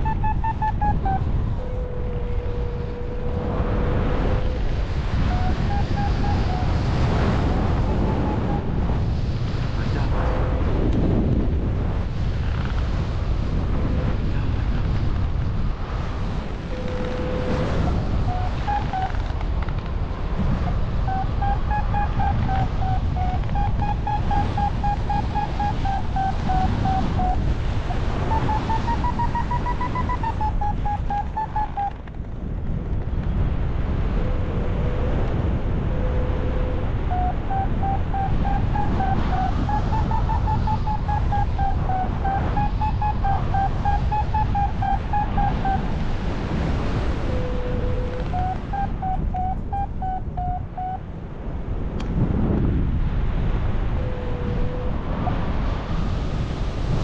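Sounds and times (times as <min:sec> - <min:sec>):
wind noise on microphone: 0:00.0 - 0:57.0.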